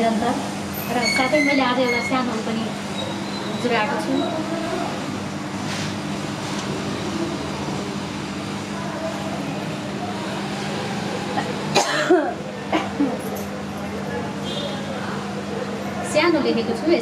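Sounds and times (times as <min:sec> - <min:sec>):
faint murmur of voices: 0:00.0 - 0:17.0
person coughing: 0:11.4 - 0:13.2.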